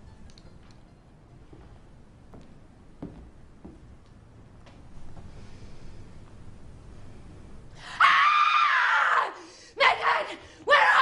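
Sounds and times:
woman screaming: 7.9 - 11.0.

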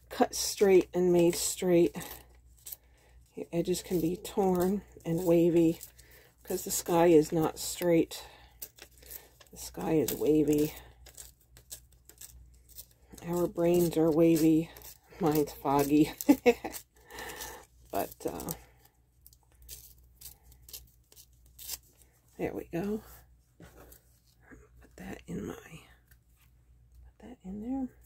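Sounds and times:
magazine paper tearing: 8.5 - 18.6, 19.6 - 22.0.

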